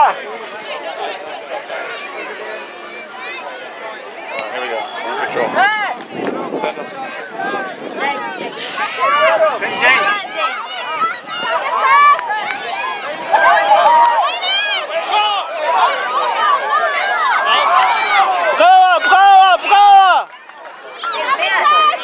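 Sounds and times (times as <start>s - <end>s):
many voices shouting: 6.9s - 22.0s.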